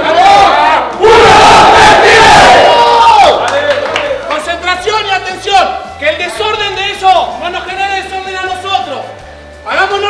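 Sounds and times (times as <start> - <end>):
team shouting together: 0.0 - 3.7.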